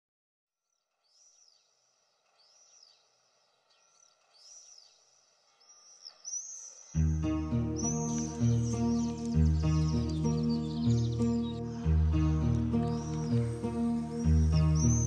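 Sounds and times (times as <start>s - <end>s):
bird chirping: 1.0s - 15.0s
music: 7.0s - 15.0s.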